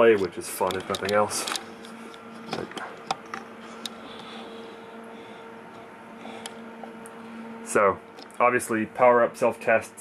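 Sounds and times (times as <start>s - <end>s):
electronic display hum: 0.0s - 10.0s.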